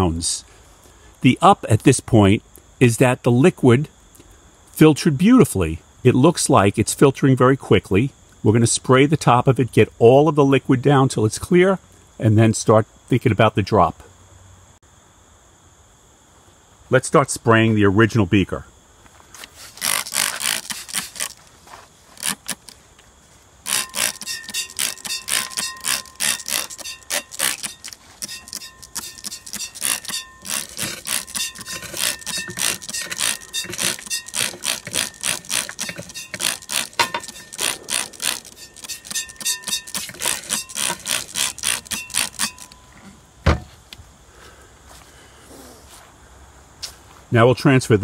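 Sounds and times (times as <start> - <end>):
spray bottle squirting: 19.7 - 21.4, 22.2 - 22.8, 23.6 - 42.8.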